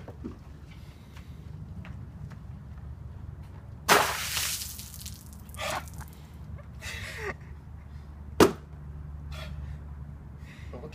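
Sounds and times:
water splash: 3.9 - 6.2.

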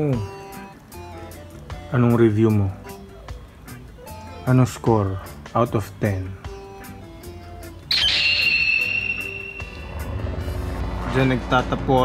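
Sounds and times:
soft background music: 0.0 - 12.0
high whistle sound effect: 7.9 - 10.4.

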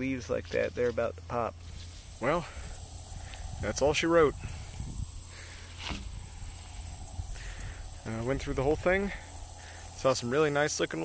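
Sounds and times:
footsteps through grass: 0.1 - 10.4
low wind rumble: 1.5 - 10.3.

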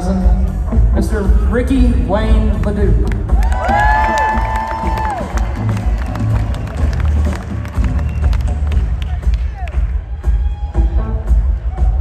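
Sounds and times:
crowd cheering and clapping: 3.1 - 12.0.

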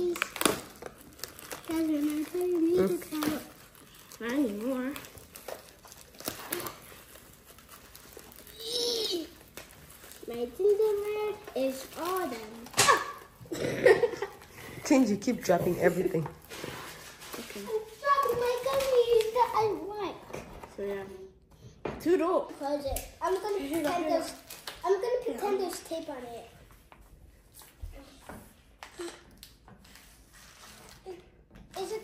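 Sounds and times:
clicks and taps of packaging: 0.0 - 6.8.

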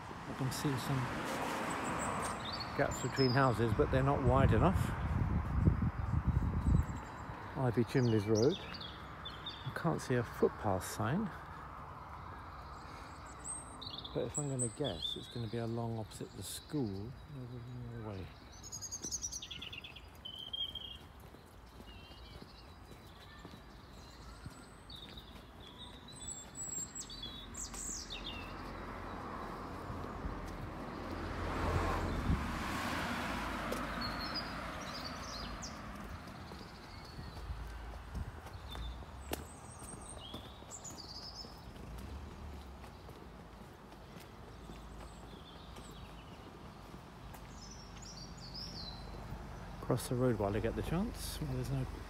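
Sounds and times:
car passing: 0.0 - 5.4, 27.2 - 52.0
small birds chirping: 0.0 - 52.0.

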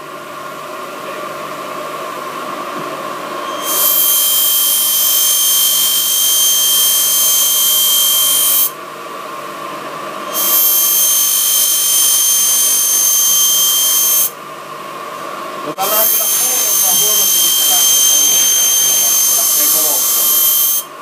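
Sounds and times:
sharpening machine running: 1.7 - 8.8, 9.7 - 14.4, 15.5 - 21.0
knife grinding on sharpening wheel: 15.8 - 20.9.

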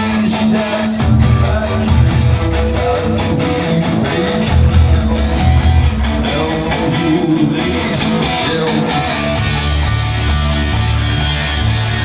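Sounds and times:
electric guitar: 0.0 - 12.0
live rock band instrumental: 0.0 - 12.0.

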